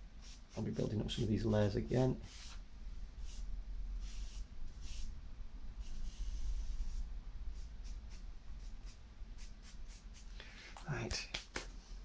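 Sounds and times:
charcoal scratching on paper: 0:00.2 - 0:01.3, 0:02.2 - 0:02.6, 0:03.2 - 0:05.1, 0:05.8 - 0:10.3
person speaking: 0:00.5 - 0:02.5, 0:10.7 - 0:11.6.

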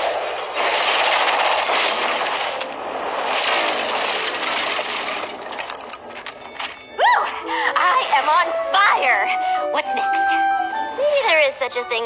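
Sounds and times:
magic spell sparkling hiss: 0:00.5 - 0:09.2, 0:10.8 - 0:11.6.

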